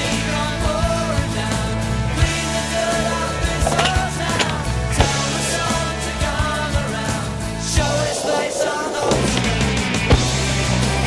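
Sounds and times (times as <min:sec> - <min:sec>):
skateboard wheels rolling: 0:00.6 - 0:11.0
skateboard clacks: 0:02.2 - 0:11.0.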